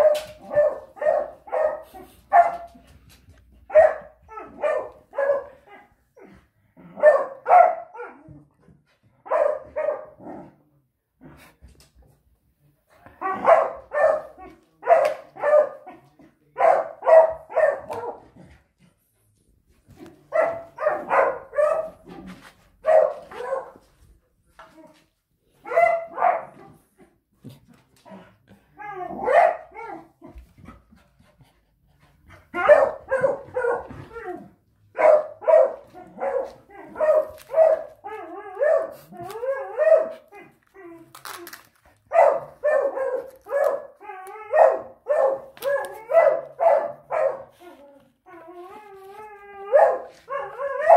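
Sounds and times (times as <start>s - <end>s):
dog barking: 0.0s - 2.8s, 3.7s - 5.9s, 7.0s - 8.2s, 9.2s - 10.2s, 13.2s - 15.9s, 16.6s - 18.4s, 20.3s - 22.1s, 22.8s - 23.8s, 25.6s - 26.8s, 29.1s - 30.1s, 32.5s - 34.0s, 34.9s - 40.5s, 42.1s - 47.5s, 49.7s - 50.9s.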